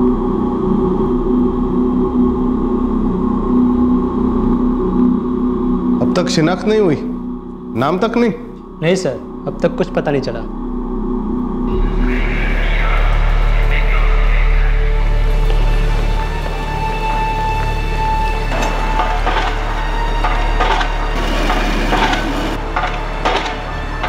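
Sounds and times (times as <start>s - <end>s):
low droning background music: 0.0s - 24.0s.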